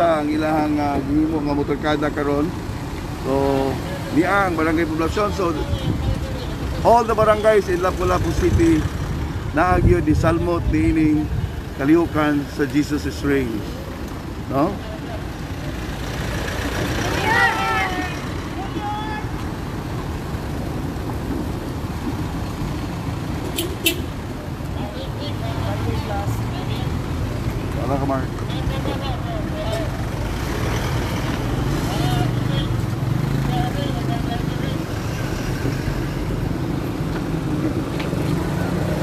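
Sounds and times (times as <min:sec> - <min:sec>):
cars driving slowly past: 0:00.0 - 0:39.0
people's voices: 0:03.2 - 0:19.6, 0:24.1 - 0:36.5.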